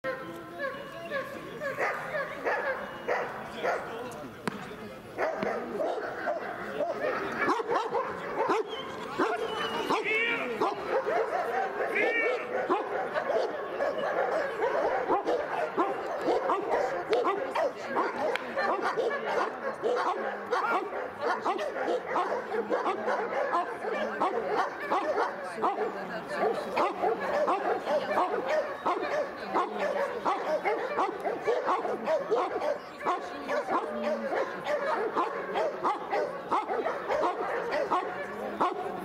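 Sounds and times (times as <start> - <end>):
people talking: 0.1 - 39.0
dog barking: 1.7 - 4.0, 5.2 - 39.0.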